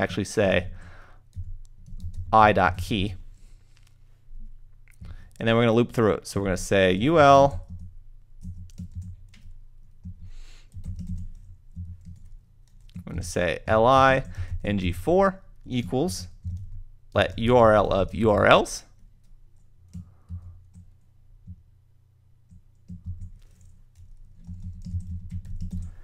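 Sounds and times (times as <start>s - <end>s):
keyboard typing: 1.3s - 2.3s, 7.5s - 13.2s, 16.2s - 18.2s, 19.0s - 21.6s, 22.4s - 26.0s.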